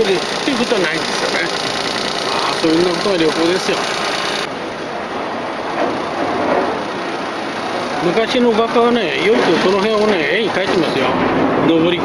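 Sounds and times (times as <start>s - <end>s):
boat engine running: 0.0s - 4.5s.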